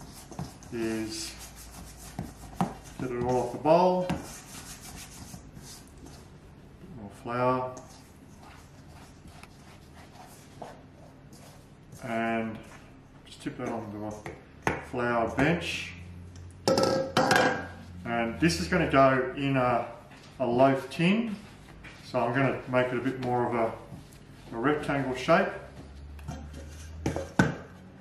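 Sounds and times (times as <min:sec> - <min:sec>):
metal bowl knocking on stone: 0:16.6 - 0:17.7.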